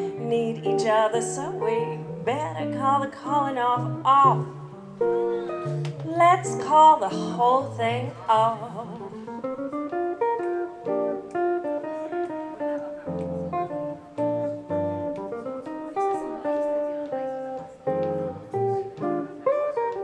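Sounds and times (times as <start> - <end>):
jazz electric guitar solo: 0.0 - 20.0.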